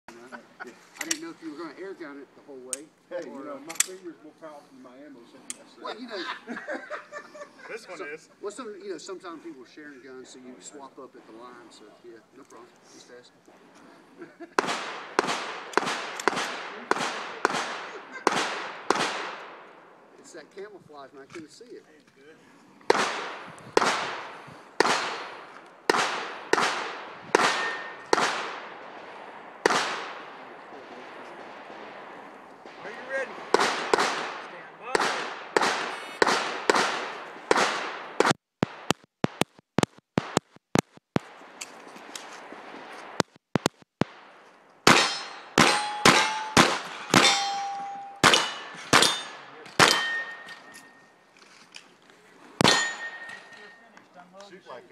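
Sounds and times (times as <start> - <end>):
pistol shots: 14.6 - 19.6, 22.9 - 41.4, 43.2 - 51.0, 52.6 - 53.7
steel plates ringing: 45.0 - 51.1, 52.6 - 53.9.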